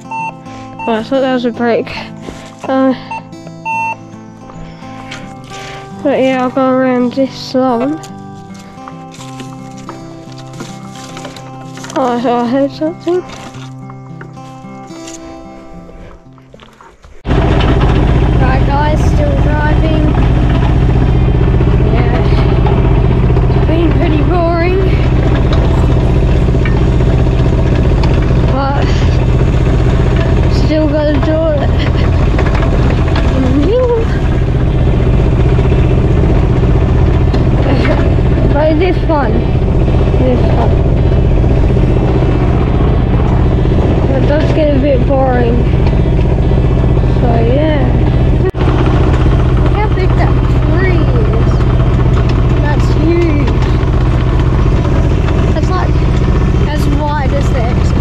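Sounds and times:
hydraulic whine: 0.0s - 7.0s, 12.9s - 58.0s
metal detector tones: 0.0s - 34.2s
excavator diesel engine running: 0.0s - 58.0s.

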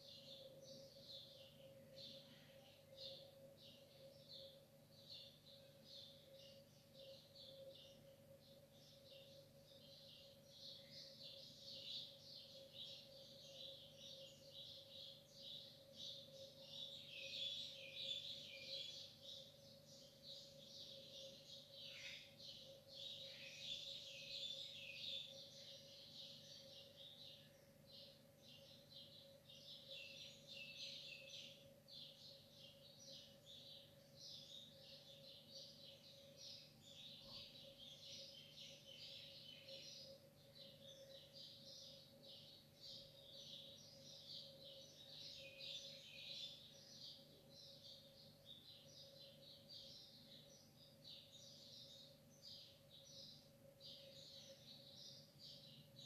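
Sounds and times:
small birds chirping: 0.0s - 56.0s.

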